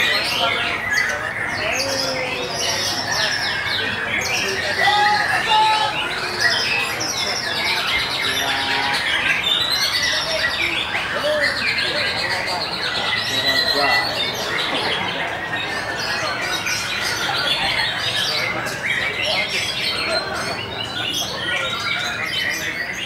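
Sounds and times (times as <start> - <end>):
bird singing whistles and chatter: 0.0 - 23.0
people's voices in background: 0.0 - 23.0.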